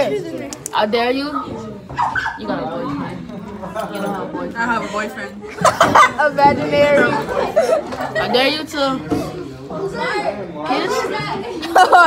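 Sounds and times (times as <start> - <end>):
teenagers talking and vocalising: 0.0 - 12.0.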